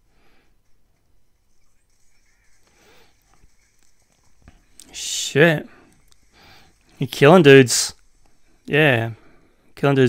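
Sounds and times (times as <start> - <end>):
faint soundtrack music: 0.0 - 10.0.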